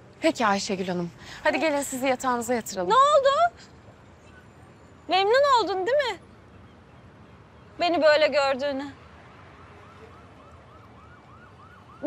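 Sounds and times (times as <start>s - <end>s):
yelping siren: 9.6s - 12.0s.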